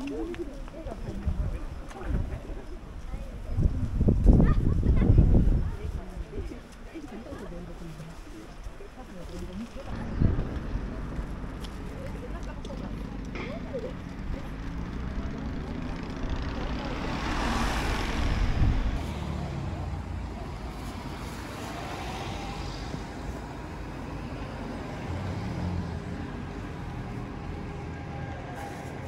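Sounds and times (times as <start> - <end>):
faint voices of passers-by: 0.0 - 29.0
vehicle passing by: 9.9 - 29.0.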